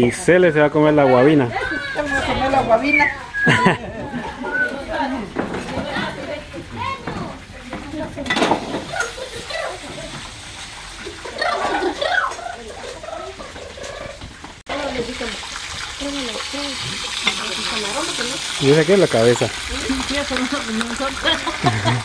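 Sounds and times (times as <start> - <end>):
kitchen clatter: 5.3 - 6.4, 7.0 - 10.4, 16.8 - 18.6
fish sizzling in oil: 6.6 - 13.4, 14.4 - 22.0
people talking: 16.0 - 22.0.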